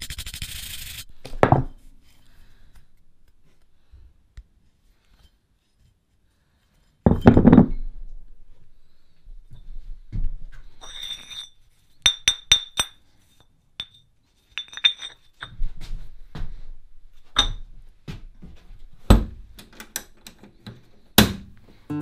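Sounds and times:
weight plate thunking on bench: 7.1s - 7.8s.

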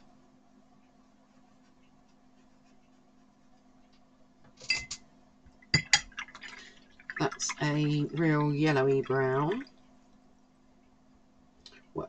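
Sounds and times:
brush clinking against glass: 4.7s - 5.0s, 5.8s - 6.1s
water swishing in a jar: 5.7s - 9.9s.

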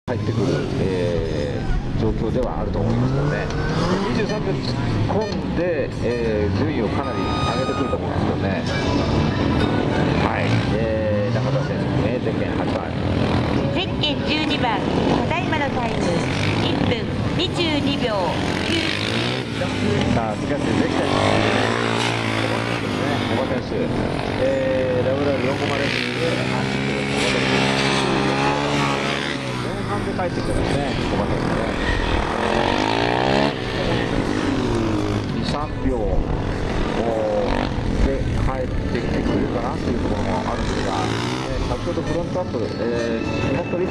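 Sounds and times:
dirt bike engine revving: 0.1s - 43.9s.

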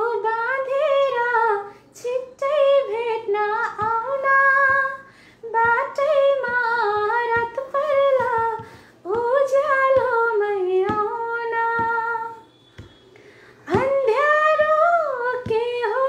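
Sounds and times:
woman singing unaccompanied: 0.0s - 12.9s, 13.6s - 16.0s.

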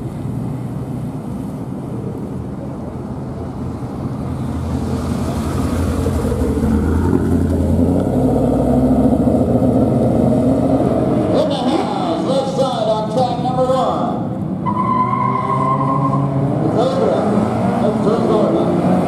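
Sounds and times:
drag car engines revving: 2.2s - 19.0s.

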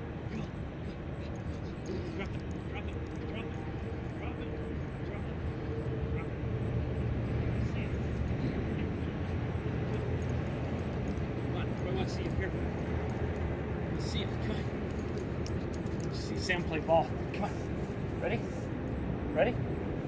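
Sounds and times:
distant road traffic rumble: 0.0s - 20.0s.

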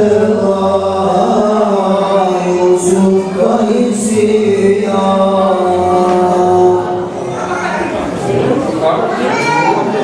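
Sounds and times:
male group singing unaccompanied: 0.0s - 8.5s.

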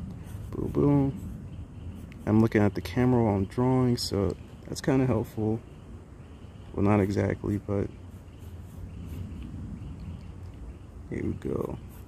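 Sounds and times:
steady low hum: 0.0s - 12.0s
pencil scratching on paper: 0.1s - 2.6s, 8.1s - 9.4s, 11.6s - 12.0s.

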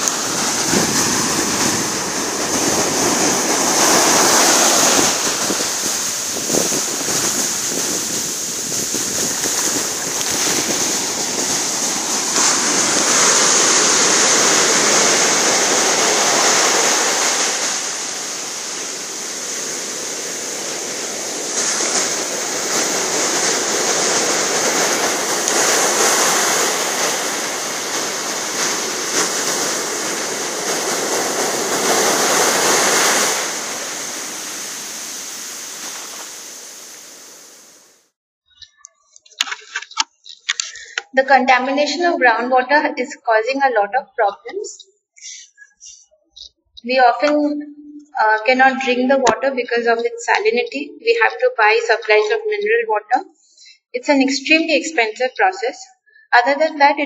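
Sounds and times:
waves breaking on beach: 0.0s - 38.1s
high hiss: 3.4s - 38.0s.

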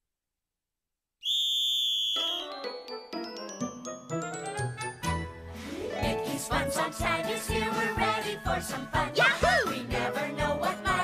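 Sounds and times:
high whistle note: 1.2s - 2.6s.

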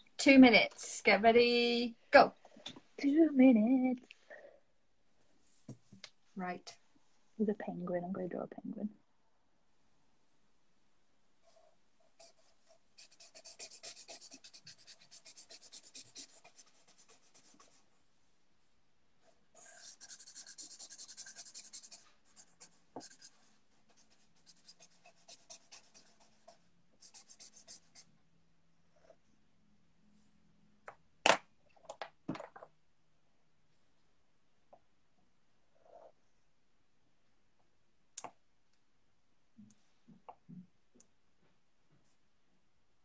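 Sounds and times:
pen scratching on paper: 12.2s - 17.8s, 19.6s - 28.1s.

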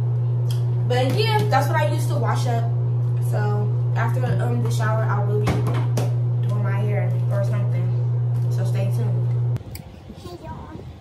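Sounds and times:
loud low hum: 0.0s - 11.0s
woman talking: 0.9s - 5.7s, 6.4s - 9.5s.

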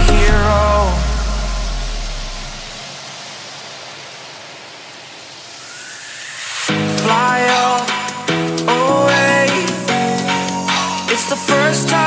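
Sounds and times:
low bass note: 0.0s - 2.8s
white noise sweep: 0.0s - 12.0s.

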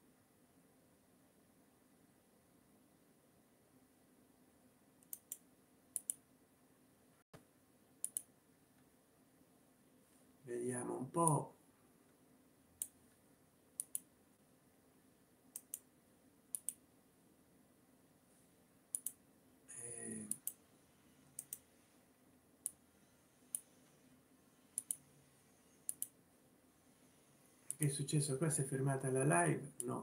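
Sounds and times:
computer mouse clicks: 5.0s - 6.2s, 8.0s - 8.3s, 12.8s - 13.0s, 13.8s - 14.1s, 15.5s - 15.9s, 16.5s - 16.8s, 18.9s - 19.2s, 20.1s - 20.6s, 21.3s - 21.7s, 22.6s - 22.8s, 23.4s - 23.9s, 24.7s - 26.2s
man's voice murmuring: 19.7s - 20.3s.

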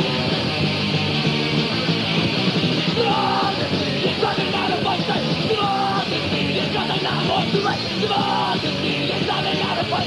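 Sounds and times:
distorted guitars: 0.0s - 10.0s
fast drums: 0.0s - 10.0s
punk band playing: 0.0s - 10.0s
person yelling vocals: 3.0s - 3.6s, 4.2s - 6.1s, 6.8s - 8.6s.

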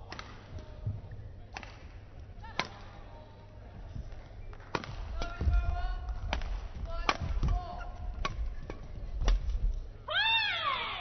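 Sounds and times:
racket hitting shuttlecock: 0.0s - 0.8s, 1.5s - 1.9s, 2.5s - 3.0s, 4.5s - 9.6s.

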